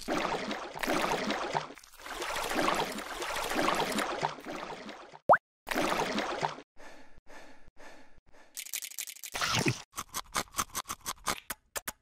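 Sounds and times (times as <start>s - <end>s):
quick wet pulses: 0.0s - 6.6s
water splashing and sloshing: 0.0s - 6.6s.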